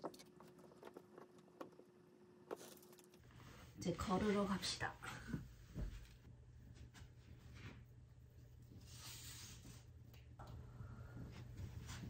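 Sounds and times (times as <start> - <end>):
faint steady hum: 0.0 - 12.0
woman speaking: 3.8 - 5.4.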